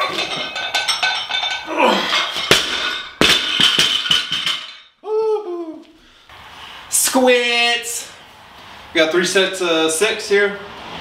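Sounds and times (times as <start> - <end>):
barbell bouncing and rattling: 0.0 - 4.9
metallic ring: 0.0 - 4.9.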